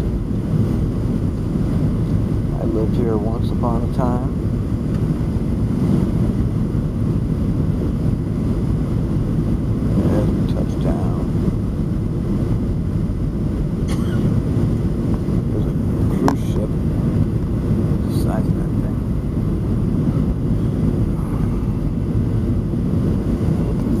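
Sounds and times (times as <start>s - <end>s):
airplane engines and airflow roar: 0.0s - 24.0s.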